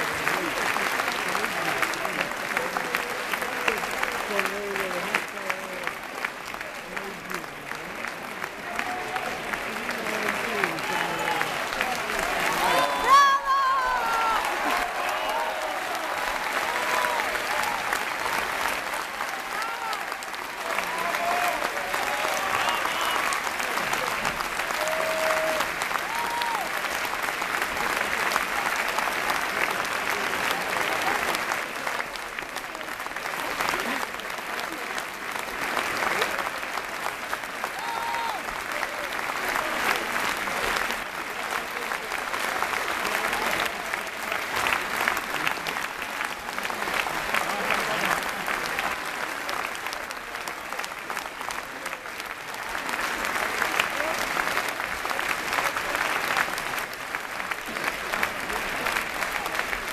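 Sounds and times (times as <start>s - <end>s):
audience clapping: 0.0s - 59.9s.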